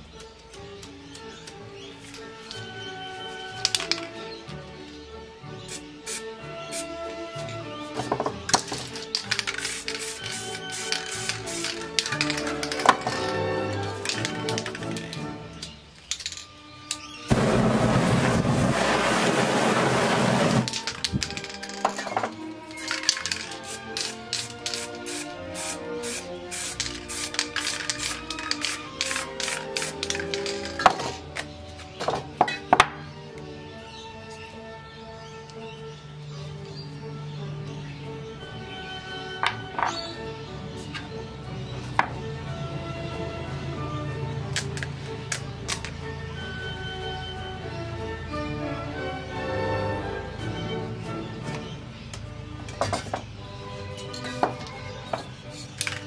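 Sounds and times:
background music: 0:00.0 - 0:56.0
rushing hiss of flame: 0:17.3 - 0:20.7.

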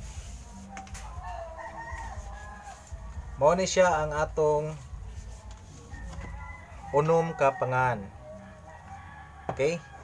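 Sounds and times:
rooster crowing: 0:01.0 - 0:03.1, 0:05.9 - 0:10.0.

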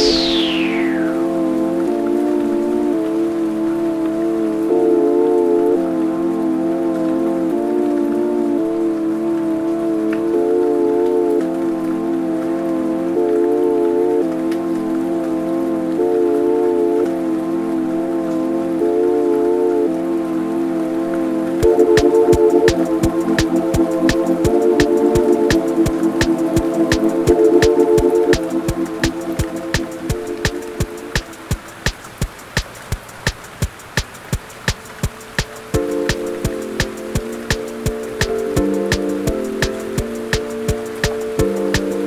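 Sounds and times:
faint steady hiss: 0:00.0 - 0:42.0.

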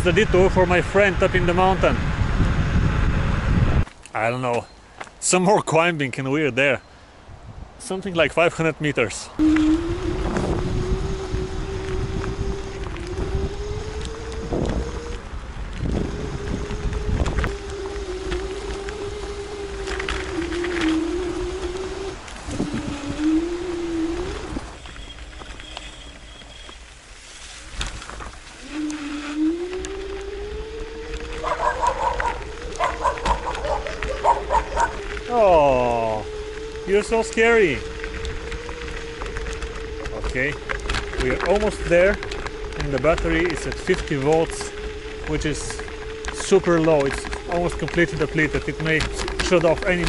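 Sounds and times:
electric scooter motor whining: 0:00.0 - 0:03.9, 0:09.4 - 0:50.0.

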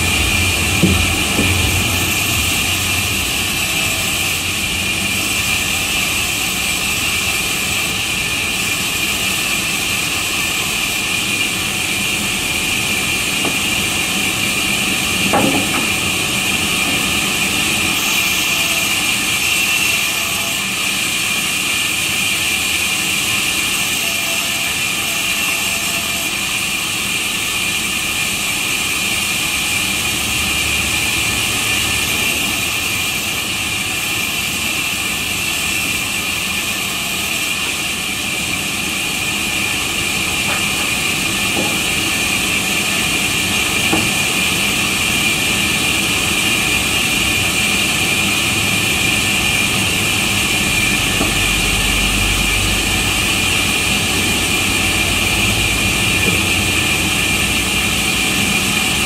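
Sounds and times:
band saw whining: 0:00.0 - 0:59.0.

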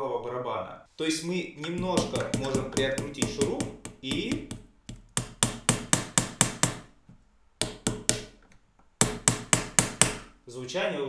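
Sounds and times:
cajon taps: 0:01.6 - 0:05.9.

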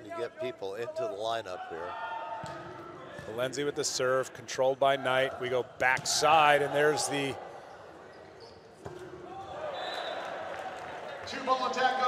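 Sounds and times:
crowd cheering: 0:09.2 - 0:12.0.

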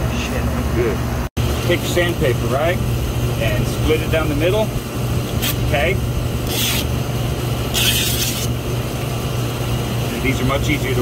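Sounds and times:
low machinery hum: 0:00.0 - 0:11.0
sandpaper tearing: 0:05.3 - 0:05.7, 0:06.4 - 0:06.9, 0:07.7 - 0:08.6.

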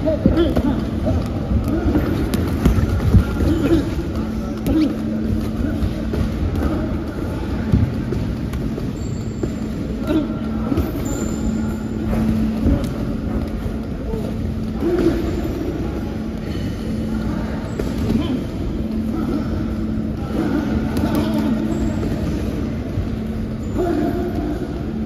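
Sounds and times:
faint voices: 0:00.0 - 0:25.0
low rumble and hum: 0:00.0 - 0:25.0.

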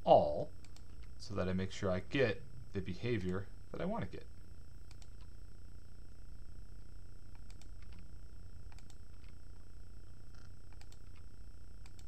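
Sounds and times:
steady low hum: 0:00.0 - 0:12.0
computer keyboard keystrokes: 0:10.7 - 0:11.2.

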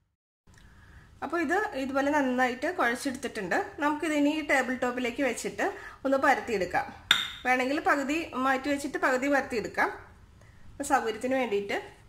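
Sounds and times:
woman talking: 0:01.2 - 0:10.1, 0:10.8 - 0:12.0
plate clinking on stone countertop: 0:07.1 - 0:07.4.

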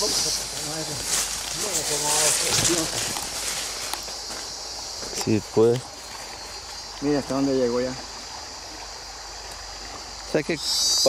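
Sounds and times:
footsteps: 0:00.0 - 0:07.4
tall grass rustling: 0:00.0 - 0:10.4.

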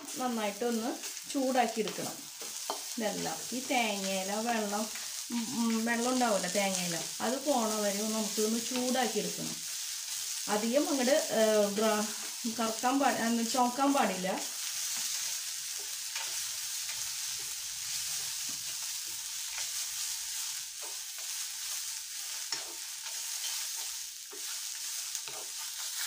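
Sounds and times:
food frying in a pan: 0:00.0 - 0:26.0
spatula scraping through food: 0:14.8 - 0:26.0.

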